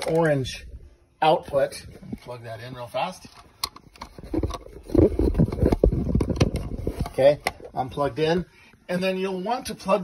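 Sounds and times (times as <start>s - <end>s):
cable rubbing and knocking: 3.2s - 7.8s.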